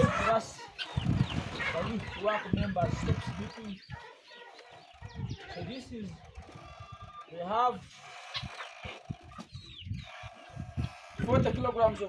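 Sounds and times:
chickens clucking: 0.0s - 12.0s
high bird chirp: 0.6s - 11.3s.

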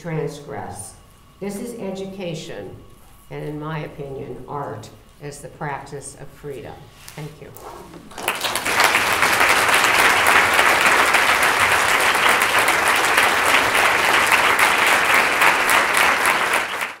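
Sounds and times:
audience applauding: 8.1s - 17.0s.

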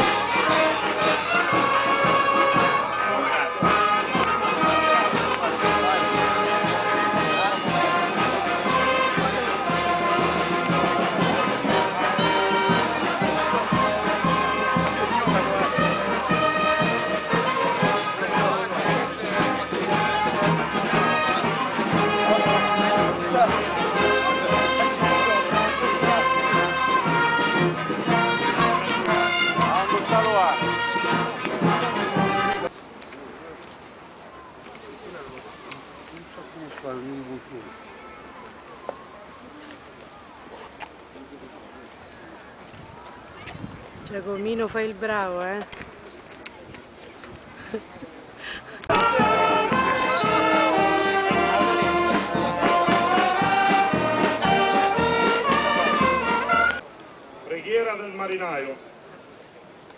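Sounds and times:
brass band playing: 0.0s - 32.7s, 48.8s - 56.8s
trombones: 0.0s - 32.7s, 48.8s - 56.8s
trumpets: 0.0s - 32.7s, 37.2s - 38.7s, 48.8s - 56.9s.

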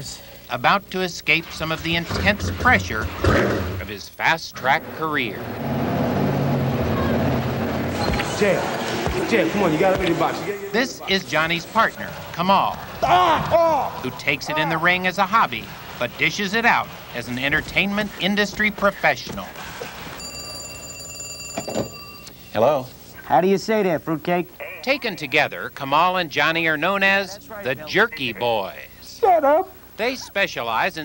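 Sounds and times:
engine droning steadily: 4.5s - 10.5s
telephone ringing: 19.1s - 22.8s.

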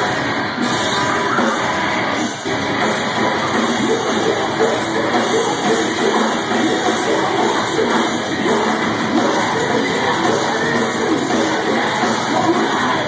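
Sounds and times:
live metal band playing loudly: 0.0s - 13.0s.

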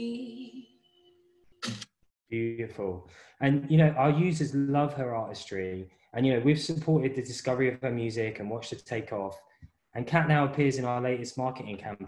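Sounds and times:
man speaking: 1.7s - 9.4s, 10.0s - 12.0s.

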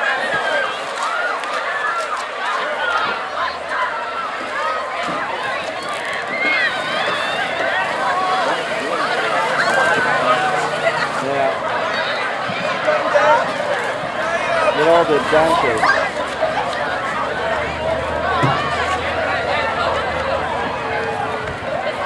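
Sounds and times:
crowd shouting and screaming: 0.0s - 22.0s.

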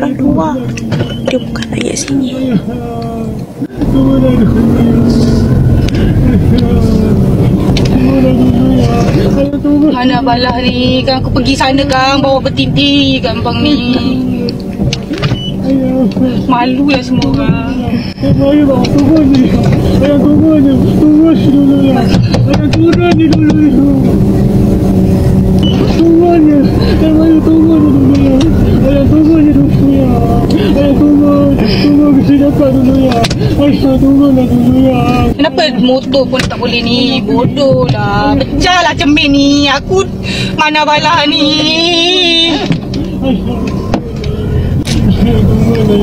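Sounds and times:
car engine and road noise: 0.0s - 46.0s
muffled voices: 0.0s - 46.0s
man shouting and pleading: 15.6s - 24.4s, 25.9s - 35.8s.

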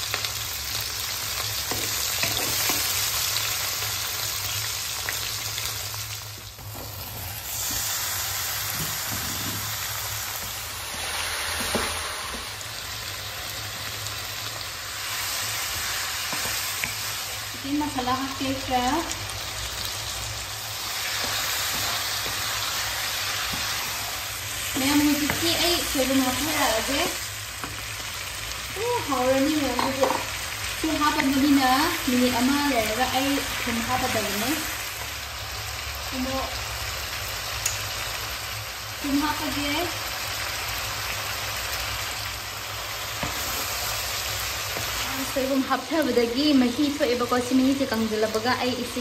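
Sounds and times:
food sizzling in a wok: 0.0s - 49.0s.

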